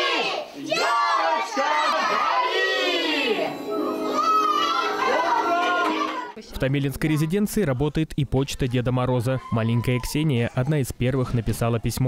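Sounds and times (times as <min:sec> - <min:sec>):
children shouting: 0:00.0 - 0:06.4.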